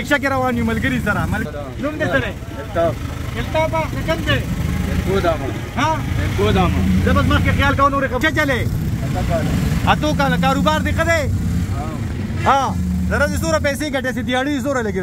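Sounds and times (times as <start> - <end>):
auto-rickshaw engine running: 0.0 - 15.0
people talking: 0.0 - 15.0.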